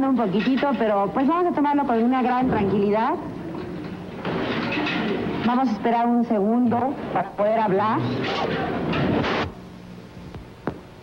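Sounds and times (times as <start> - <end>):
low steady hum: 0.0 - 11.0
rough broadcast noise: 0.0 - 11.0.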